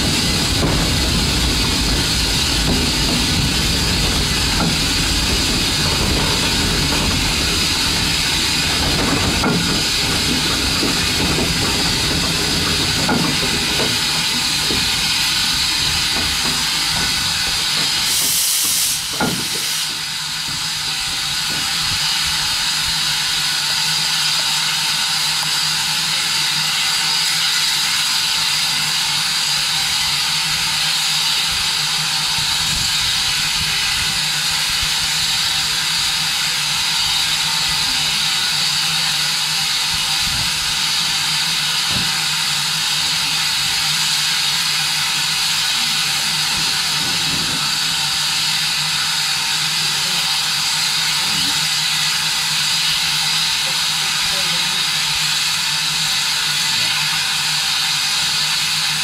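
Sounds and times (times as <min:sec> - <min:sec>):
steam locomotive hissing: 0:00.0 - 0:59.0.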